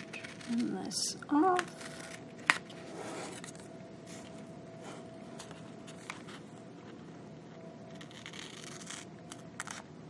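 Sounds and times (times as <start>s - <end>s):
scissors cutting paper: 0.0s - 3.6s, 7.9s - 9.9s.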